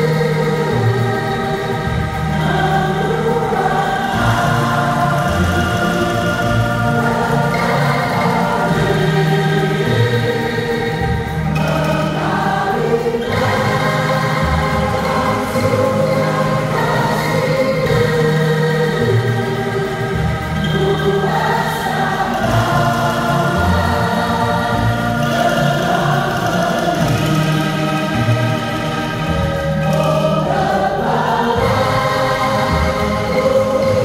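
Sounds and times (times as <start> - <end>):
choir singing: 0.0 - 34.0.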